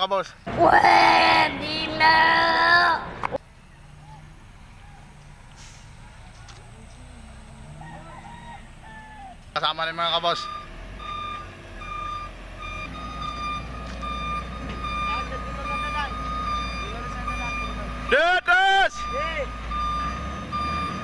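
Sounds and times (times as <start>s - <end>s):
diesel engine running: 3.1s - 21.0s
truck reversing alarm beeping: 3.5s - 21.0s
man shouting: 18.1s - 19.4s.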